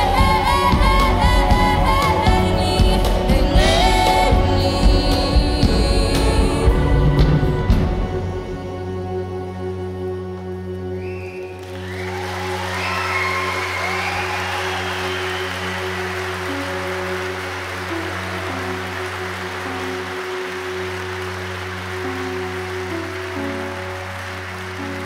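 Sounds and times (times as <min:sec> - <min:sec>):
band holding long low notes: 0:00.0 - 0:25.0
audience applause with cheers: 0:11.0 - 0:25.0.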